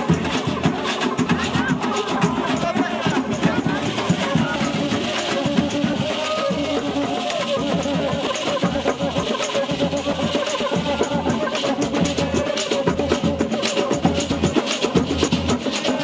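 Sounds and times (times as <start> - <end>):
snare drums: 0.0 - 16.0
tambourines: 0.0 - 16.0.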